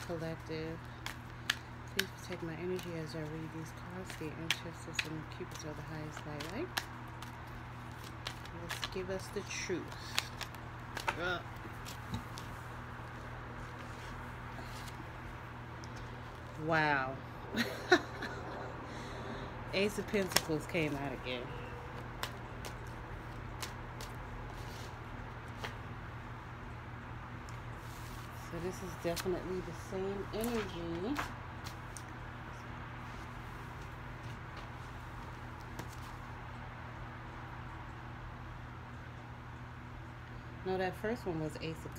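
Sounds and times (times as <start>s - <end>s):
cards being shuffled: 0.0s - 15.2s, 19.8s - 21.2s, 21.9s - 25.9s, 27.8s - 32.2s, 33.0s - 36.3s
low background hum: 0.0s - 41.9s.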